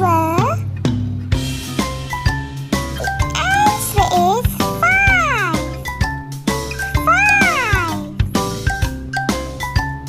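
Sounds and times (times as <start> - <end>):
cartoon background music: 0.0 - 10.0
cartoon creature voice effect: 3.3 - 5.8, 6.9 - 8.1.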